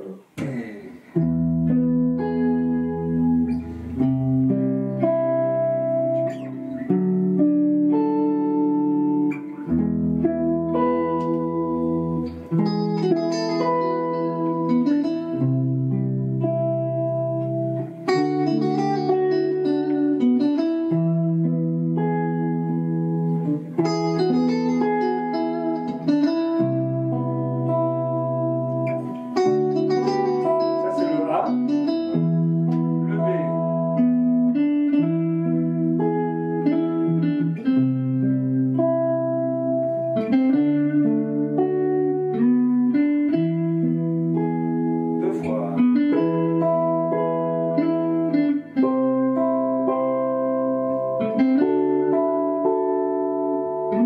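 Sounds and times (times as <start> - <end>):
electric guitar melody: 0.0 - 54.0
electric guitar sustained chords: 1.1 - 54.0.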